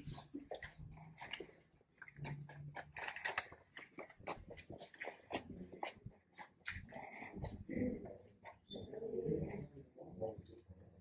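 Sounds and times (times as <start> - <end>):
faint low voice: 6.9 - 11.0.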